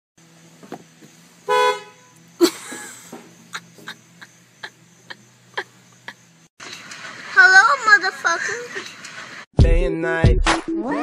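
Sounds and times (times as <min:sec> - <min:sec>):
car engine idling hum: 0:00.2 - 0:07.4
car horn toot: 0:01.4 - 0:02.3.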